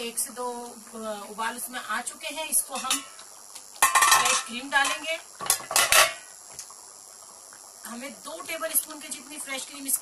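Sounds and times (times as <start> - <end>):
metal pot lid clanking: 2.7 - 3.1, 3.8 - 6.2.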